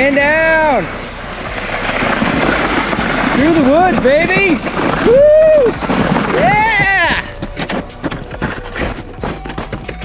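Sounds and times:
sled sliding over snow: 0.0 - 10.0.

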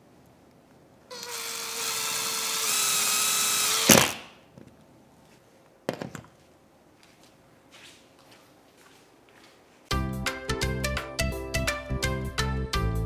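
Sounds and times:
cordless driver motor whine: 1.1 - 4.1.

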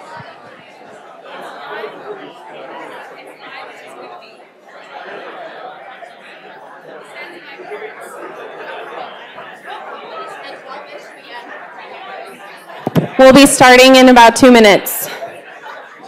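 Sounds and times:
crowd chatter echoing in hall: 0.0 - 16.0.

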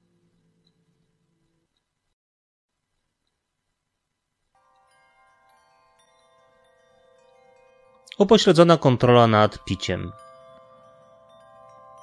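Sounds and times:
faint chime-like chord: 4.6 - 12.0.

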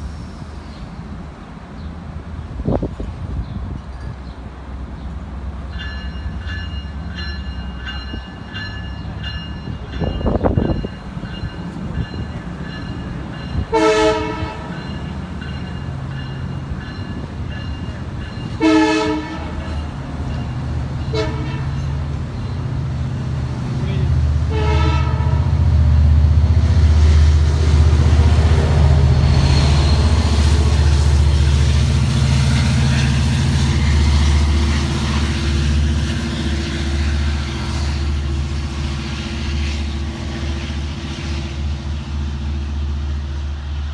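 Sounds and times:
train horn blasts: 13.6 - 14.8, 18.5 - 19.8, 21.0 - 21.9, 24.4 - 25.7.

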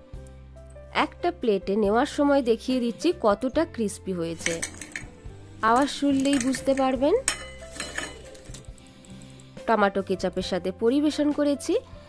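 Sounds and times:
background music: 0.0 - 12.0
metal skimmer scraping plate: 4.3 - 8.6.

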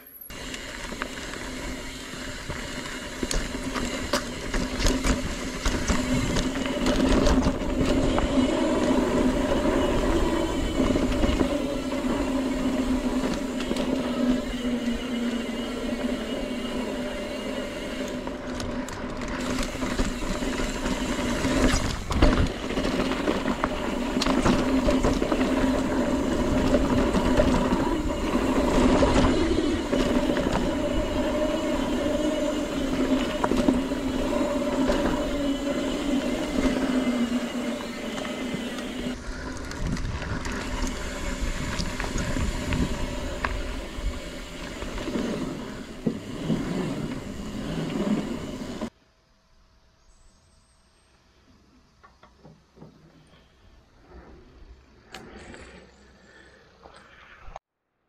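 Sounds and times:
bike tyre noise and rattle: 0.0 - 49.0
wind rumble: 0.3 - 49.0.

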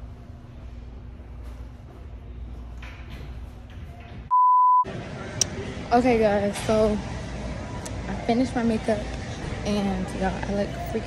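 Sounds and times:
censor beep: 4.3 - 4.9.

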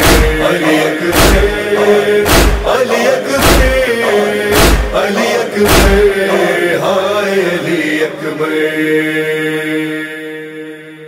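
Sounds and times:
humming vocal drone: 0.0 - 11.0
person chanting: 0.0 - 11.0.

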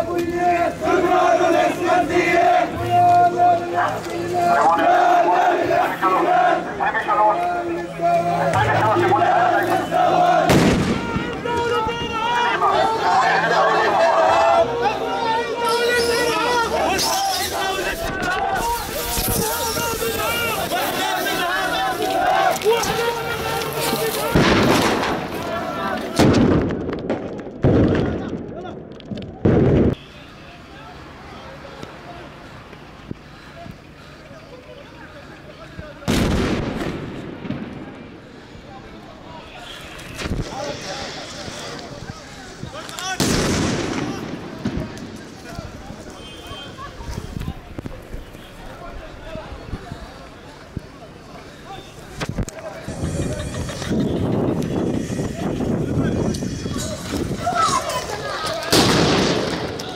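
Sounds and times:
voices shouting: 0.0 - 26.4, 38.7 - 59.9
crowd noise: 0.0 - 59.9
loud bang: 10.5 - 11.2.

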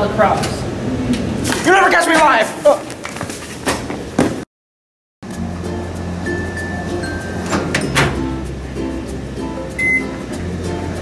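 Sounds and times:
background music: 5.2 - 11.0
microwave oven humming: 9.7 - 11.0
microwave keypad beep: 9.8 - 10.2.

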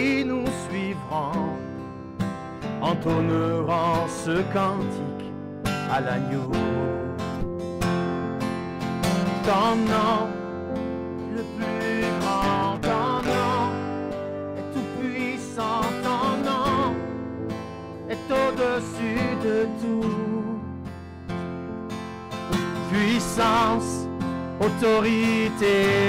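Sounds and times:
man singing: 0.0 - 1.7, 2.8 - 7.4, 9.3 - 10.5, 11.2 - 17.2, 18.0 - 20.7, 22.8 - 26.0
acoustic guitar strumming chords: 0.0 - 26.0.

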